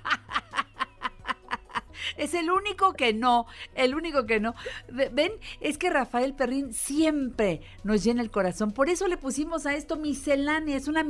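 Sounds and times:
woman laughing heartily: 0.0s - 2.2s.

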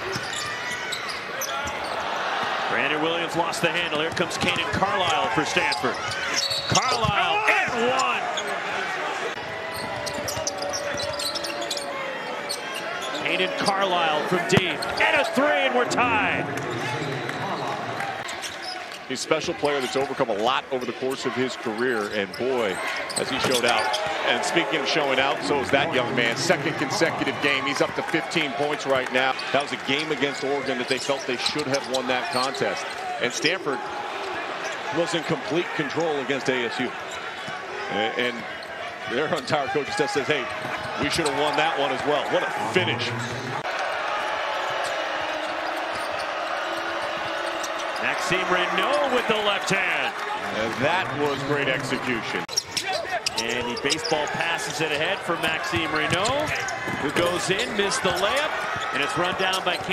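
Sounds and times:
arena crowd din: 0.0s - 59.9s.

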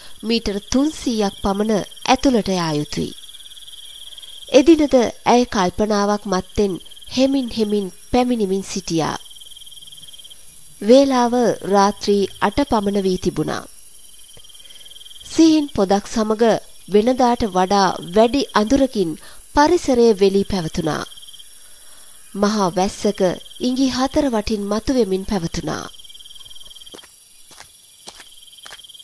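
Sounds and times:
crickets chirping: 0.0s - 29.0s
person narrating: 0.2s - 3.1s, 4.5s - 9.2s, 10.8s - 13.7s, 22.4s - 25.9s.

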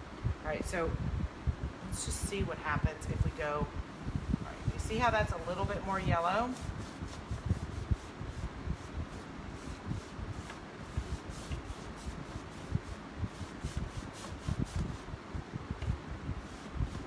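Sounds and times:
paintbrush brushing on wood: 4.5s - 15.1s, 16.3s - 17.0s.

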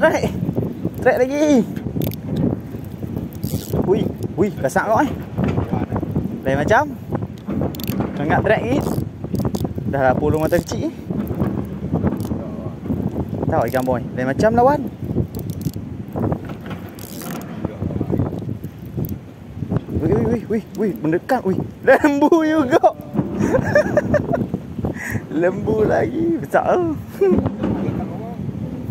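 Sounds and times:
wind rumble on microphone: 0.0s - 28.9s
fishing reel ticking: 0.5s - 4.4s, 7.7s - 8.0s, 8.8s - 11.4s, 12.1s - 12.4s, 13.0s - 14.0s, 15.1s - 15.8s, 16.9s - 17.4s
spinning reel being cranked: 3.3s - 4.3s, 7.7s - 8.0s, 10.4s - 10.8s, 13.7s - 14.0s, 15.3s - 15.8s, 16.9s - 17.5s.

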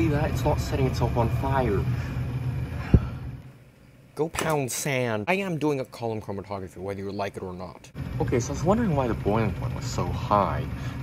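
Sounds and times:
exhaust fan humming: 0.0s - 11.0s.

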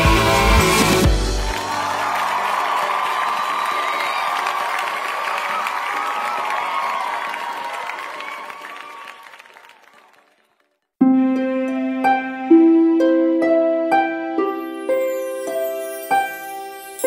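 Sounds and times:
crowd cheering and clapping: 0.0s - 10.9s.

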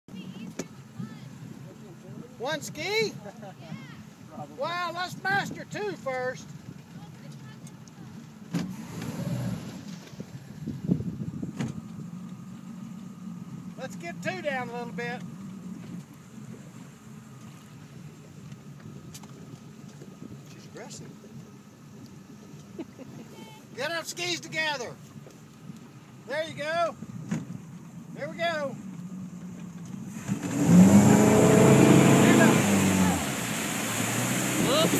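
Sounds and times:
wind: 0.0s - 34.9s
rushing water: 0.1s - 11.0s, 27.6s - 34.9s
boat engine running low: 0.1s - 34.9s.

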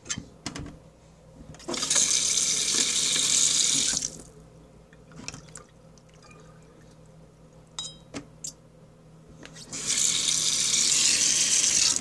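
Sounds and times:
water tap running: 1.7s - 4.3s, 9.7s - 12.0s.

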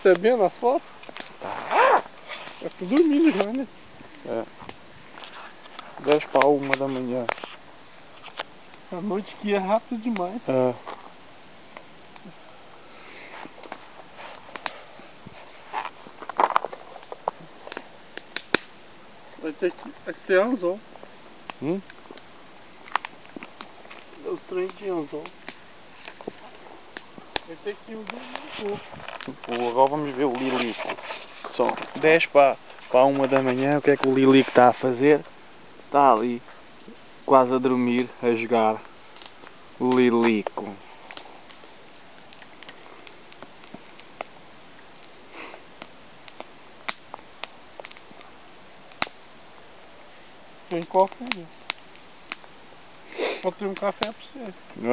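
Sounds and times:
campfire crackling and popping: 0.0s - 54.9s
soft breathy hiss: 0.0s - 54.9s.

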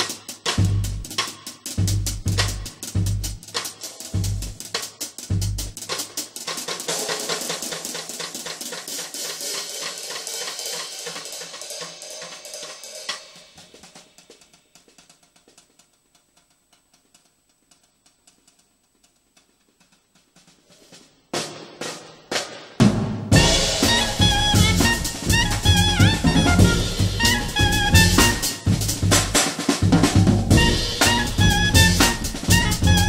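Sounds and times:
snare drum hits: 0.0s - 13.9s, 21.4s - 33.0s
bass drum kicks: 0.6s - 1.1s, 1.8s - 3.4s, 4.2s - 4.6s, 5.3s - 5.8s, 22.8s - 33.0s
cymbal wash: 22.9s - 33.0s.

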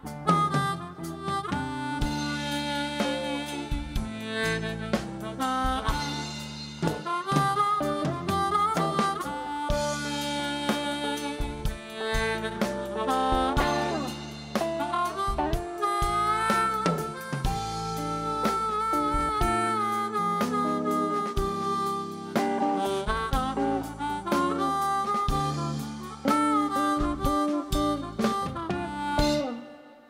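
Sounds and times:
bass notes: 0.0s - 29.6s
amplified blues harmonica: 0.0s - 30.0s
drums: 0.0s - 30.0s.

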